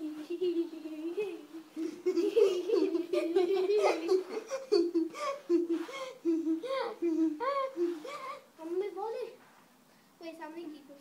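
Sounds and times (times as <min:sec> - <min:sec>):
child laughing: 0:00.3 - 0:08.5.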